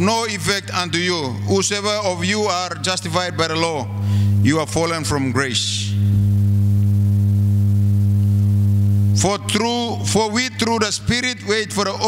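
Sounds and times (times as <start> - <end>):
low-pitched electronic hum: 0.0 - 12.0.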